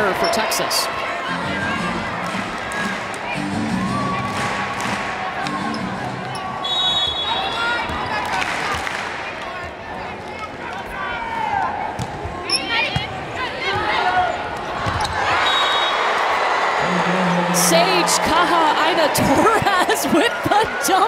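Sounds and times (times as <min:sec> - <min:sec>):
crowd noise with shouts: 0:00.0 - 0:21.0
whistle: 0:06.6 - 0:07.5, 0:15.4 - 0:16.0.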